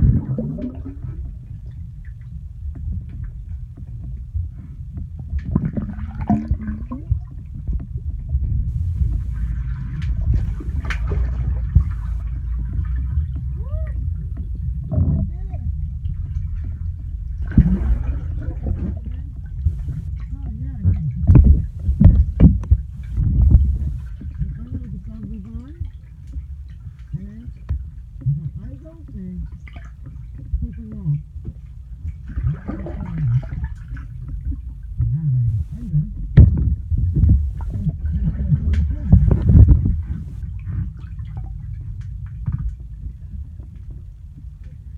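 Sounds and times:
bubbly gurgles and swishes: 0.0s - 44.9s
underwater rumble of moving water: 0.0s - 44.9s.

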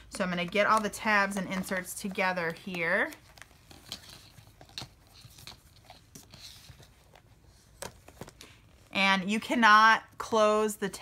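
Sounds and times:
paper pages rustling: 0.4s - 8.9s.

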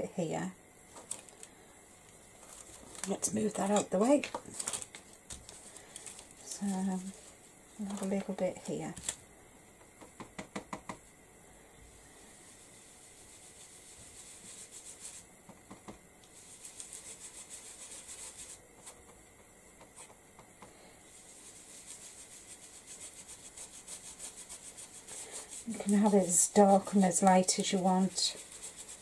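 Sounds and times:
brush scrubbing strokes: 12.2s - 15.3s, 16.3s - 19.0s, 21.1s - 29.0s.

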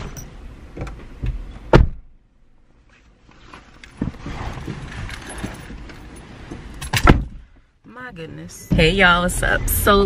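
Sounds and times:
knocks and rustles at car door: 0.7s - 2.2s, 6.4s - 7.5s
car door shutting thud: 0.8s - 2.1s, 6.8s - 7.4s.

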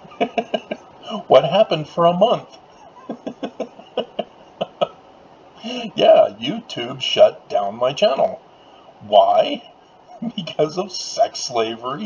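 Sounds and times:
man chuckling: 0.0s - 1.6s, 2.2s - 5.0s, 5.6s - 6.0s, 9.1s - 10.9s.

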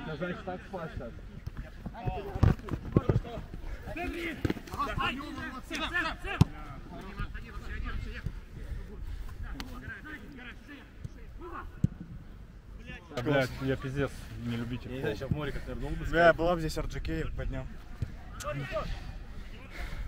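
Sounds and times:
football being kicked: 1.5s - 3.4s.

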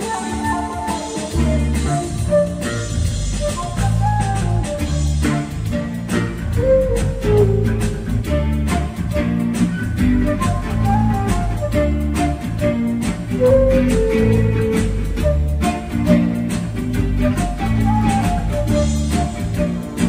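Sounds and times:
drum machine beat: 0.0s - 20.0s
guitar: 0.0s - 20.0s
moving bass line: 0.0s - 20.0s.

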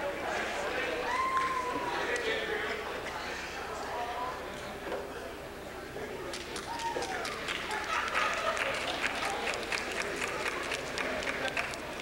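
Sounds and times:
murmur of voices: 0.0s - 12.0s
audience applauding: 6.6s - 12.0s.

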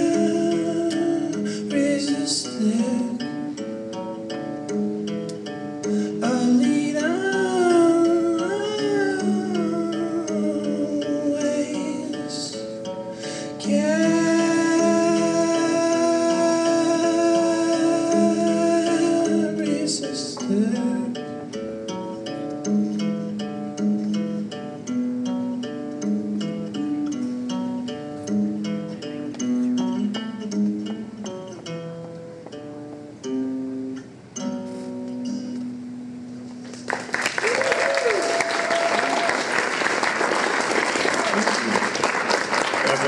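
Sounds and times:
electric guitar picking: 0.0s - 36.9s
audience applause: 36.7s - 43.0s.

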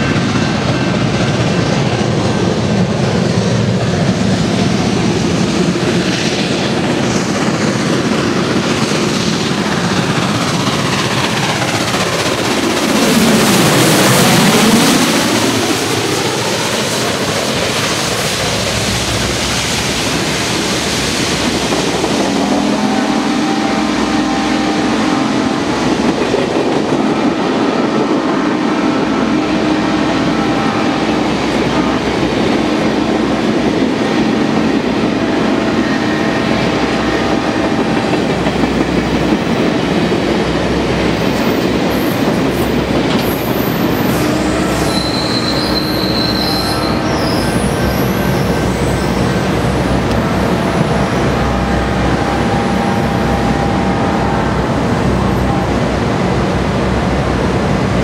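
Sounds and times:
train wheels clattering on rails: 0.0s - 58.0s
high wheel squeal: 41.2s - 55.9s.

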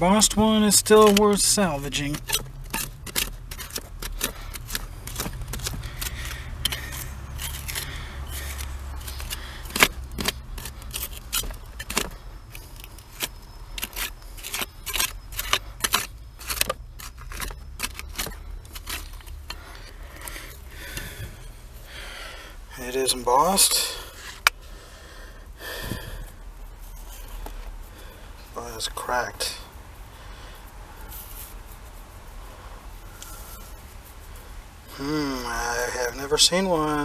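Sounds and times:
hand tool scraping dirt: 0.0s - 24.6s
low steady rumble: 0.0s - 37.0s.

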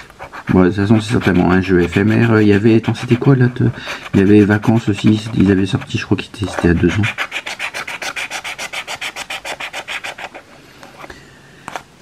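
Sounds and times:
lottery ticket being scratched: 0.2s - 10.4s.

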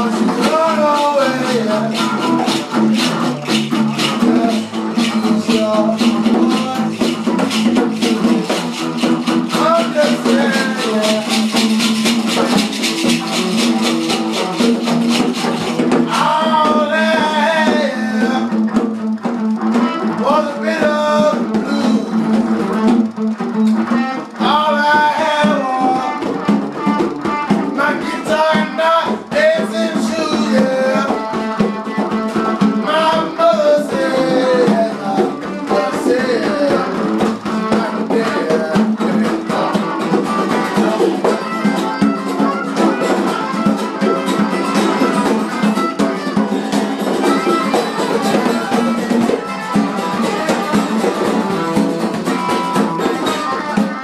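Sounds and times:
man singing: 0.0s - 18.9s, 19.9s - 22.8s, 24.2s - 54.0s
acoustic guitar strumming: 0.0s - 54.0s
hand drum beaten: 0.0s - 54.0s.

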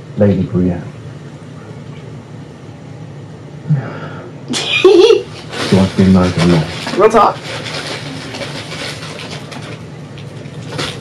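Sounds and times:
short breath: 3.7s - 4.4s.

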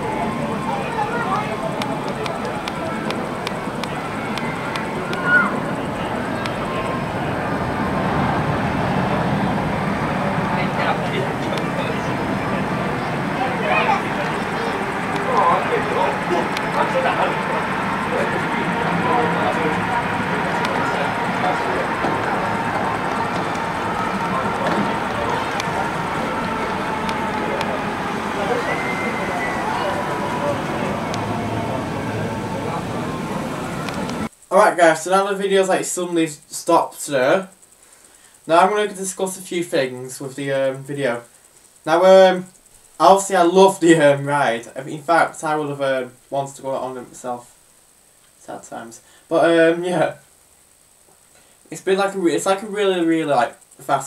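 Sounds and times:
high cry: 0.0s - 34.3s
sharp track clicks: 0.0s - 34.6s
roller coaster rushing on track: 0.0s - 36.3s
din of voices: 0.0s - 37.6s, 38.5s - 41.3s, 41.9s - 47.4s.

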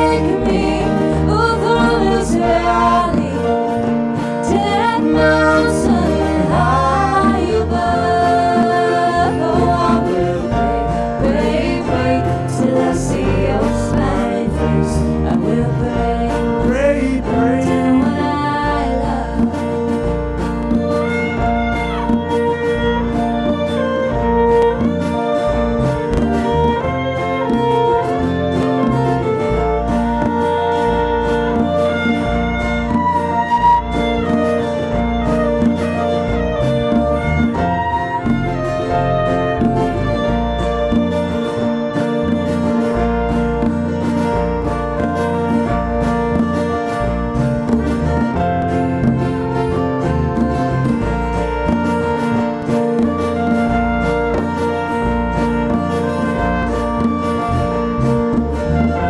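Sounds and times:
bluegrass band playing: 0.0s - 59.0s
violin melody: 0.0s - 59.0s.

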